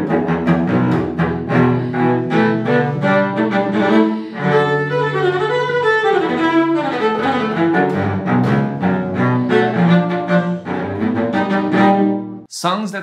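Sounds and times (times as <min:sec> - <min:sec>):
fast bowed cello: 0:00.0 - 0:12.5.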